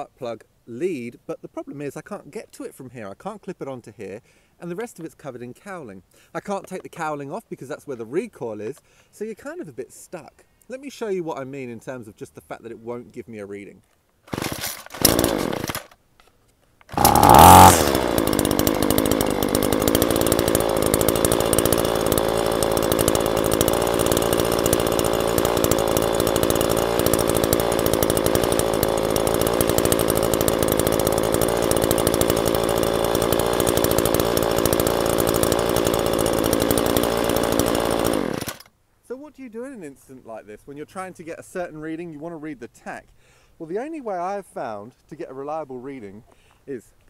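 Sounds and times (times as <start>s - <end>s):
recoil starter pull: 14.3s - 16.0s, 16.8s - 38.7s
string trimmer engine running: 14.3s - 16.0s, 16.9s - 38.7s.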